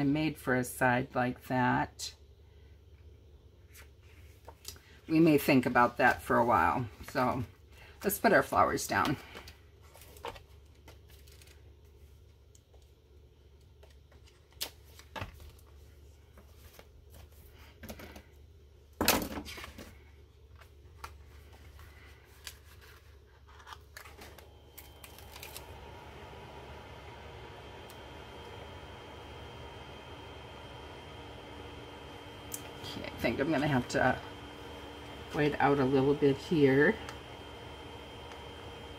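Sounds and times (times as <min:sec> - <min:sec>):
paper stickers rustling: 0:20.6 - 0:25.7
steady hum with high whine: 0:24.0 - 0:38.9.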